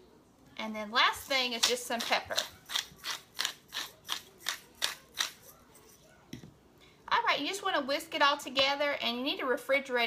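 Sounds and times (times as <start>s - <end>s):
pepper mill grinding: 1.1s - 6.0s.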